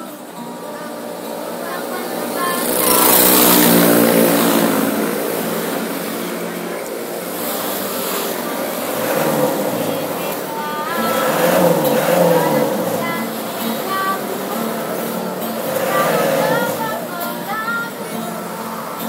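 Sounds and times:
woman singing: 0.0s - 4.0s, 7.9s - 19.0s
loud motor traffic: 0.0s - 19.0s.

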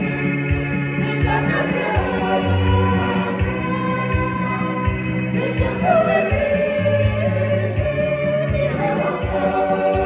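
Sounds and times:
sustained bass notes: 0.0s - 10.0s
congregation singing a hymn: 0.9s - 10.0s.

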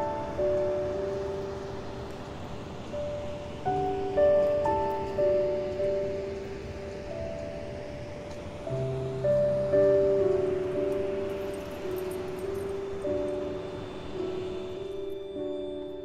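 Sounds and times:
faint steady noise: 0.0s - 16.0s
slow gentle melody: 0.0s - 16.0s.

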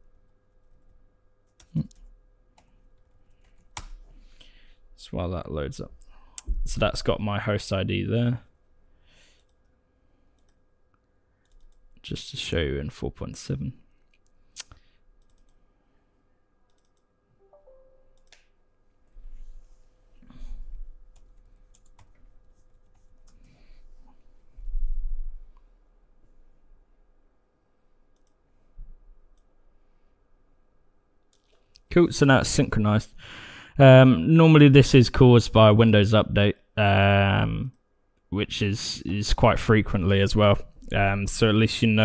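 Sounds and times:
computer mouse clicks: 10.4s - 11.8s, 14.1s - 15.6s, 16.7s - 17.1s, 18.2s - 18.5s, 28.1s - 28.4s.

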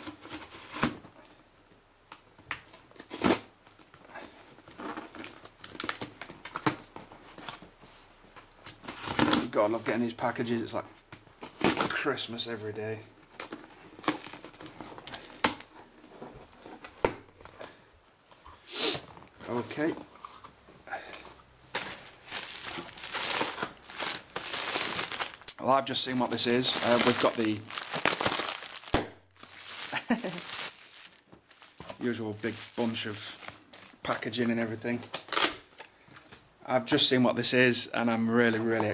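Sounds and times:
plastic packing material crinkling: 4.7s - 6.9s, 13.2s - 16.8s, 21.7s - 35.7s
sharp cardboard snaps: 28.8s - 29.2s.

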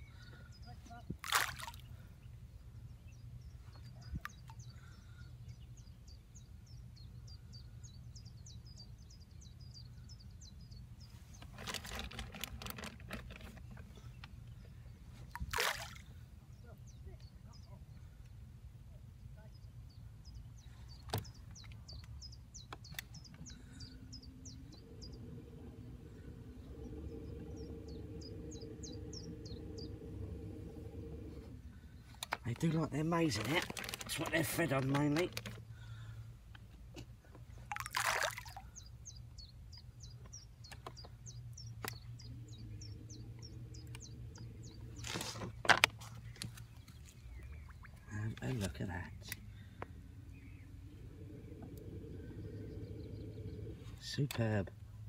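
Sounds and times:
birds chirping: 0.0s - 18.4s, 19.2s - 55.0s
low steady hum: 0.0s - 55.0s
maize splashing into water: 1.2s - 1.9s, 15.3s - 16.1s, 37.7s - 38.7s
low rumble: 23.2s - 34.1s, 41.1s - 55.0s.

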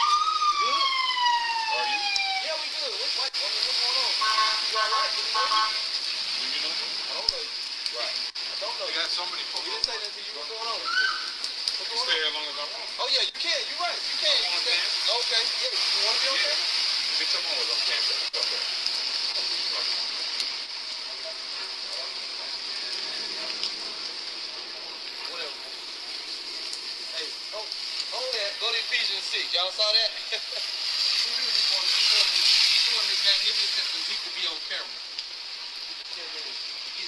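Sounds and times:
rain hissing: 0.0s - 37.0s
traffic on a wet street: 0.0s - 37.0s
vehicle horn blasts: 4.2s - 5.9s
faint voices: 6.6s - 30.5s.

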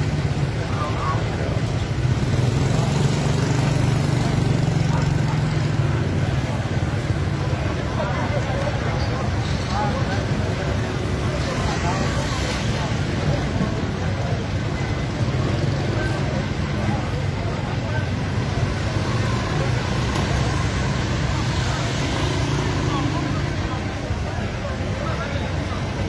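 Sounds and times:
people's voices: 0.0s - 26.0s
vehicles running: 0.0s - 26.0s.

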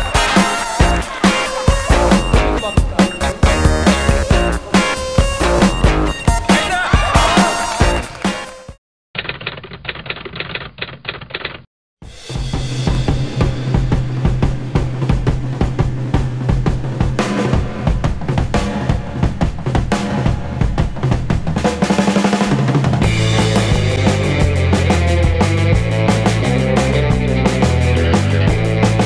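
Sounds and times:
steady bass line: 0.0s - 8.1s, 23.0s - 29.0s
music with heavy drum beat: 0.0s - 8.8s, 12.0s - 29.0s.

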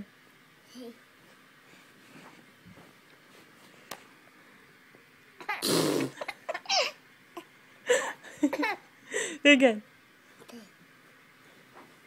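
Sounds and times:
person blowing a raspberry: 5.5s - 6.3s.

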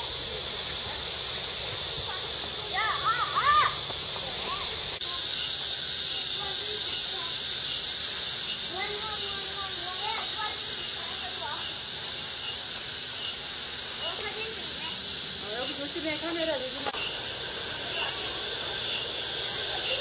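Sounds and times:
cicadas buzzing: 0.0s - 20.0s.

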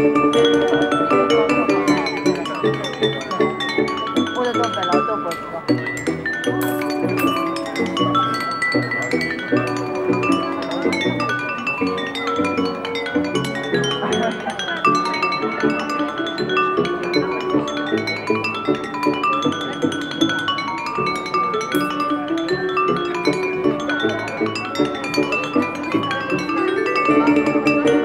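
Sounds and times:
glass harp melody: 6.5s - 28.0s.

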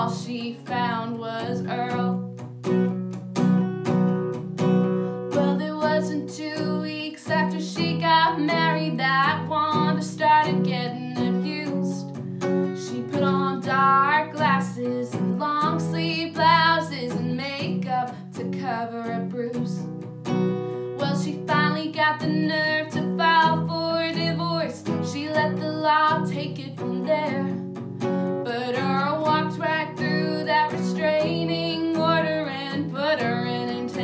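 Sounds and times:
woman singing with vibrato: 0.0s - 2.3s, 5.3s - 12.2s, 12.8s - 19.8s, 21.0s - 27.6s, 28.4s - 34.0s
strummed acoustic guitar: 0.0s - 34.0s.

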